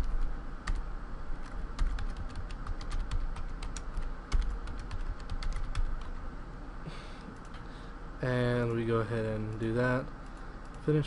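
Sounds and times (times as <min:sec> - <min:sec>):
computer keyboard typing: 0:00.0 - 0:00.8, 0:01.4 - 0:06.2.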